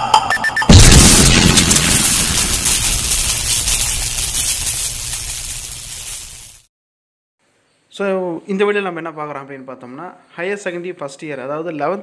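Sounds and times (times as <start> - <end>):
boom sound effect rumble and hiss: 0.6 - 6.7.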